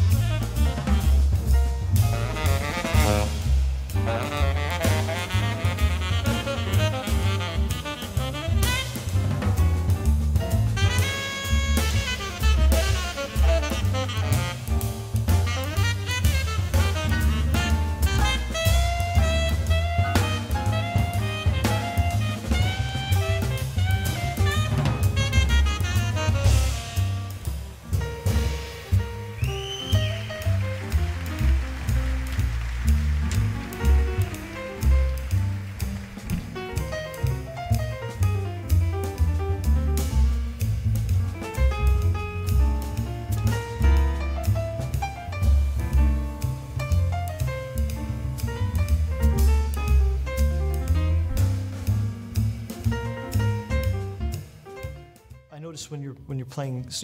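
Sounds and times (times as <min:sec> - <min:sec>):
drum kit and cymbals: 0:00.0 - 0:57.0
piano: 0:00.0 - 0:57.0
upright bass notes: 0:00.0 - 0:57.0
tenor saxophone line: 0:02.0 - 0:09.2, 0:10.8 - 0:27.4.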